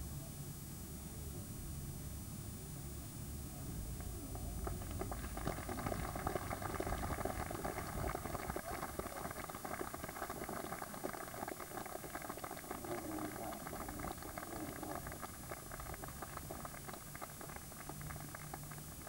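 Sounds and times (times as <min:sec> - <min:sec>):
spectators clapping: 0:03.9 - 0:19.0.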